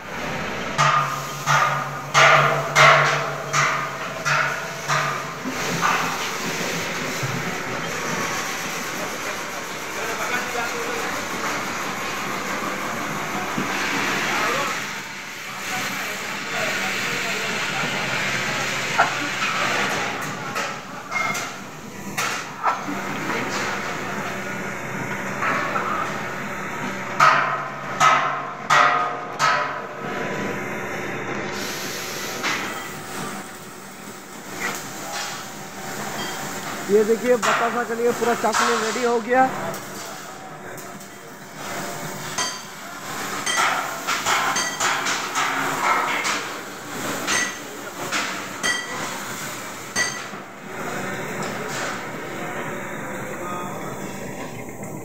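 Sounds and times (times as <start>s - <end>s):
machine humming: 0.0s - 44.4s, 45.1s - 55.0s.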